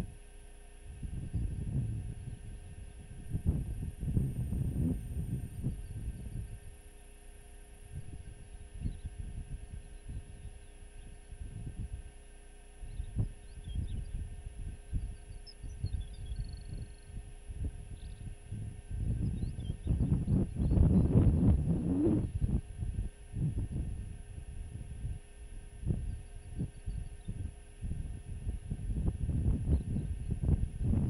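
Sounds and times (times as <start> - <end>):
thin high whine: 0.0 - 31.0
wind buffeting microphone: 0.9 - 6.8, 7.9 - 12.1, 12.9 - 31.0.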